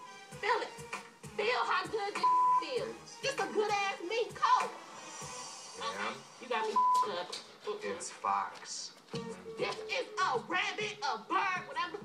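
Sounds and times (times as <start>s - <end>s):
background music: 0.0s - 12.0s
woman speaking angrily: 0.4s - 0.8s, 1.4s - 4.8s, 9.6s - 12.0s
censor bleep: 2.2s - 2.7s, 6.8s - 7.1s.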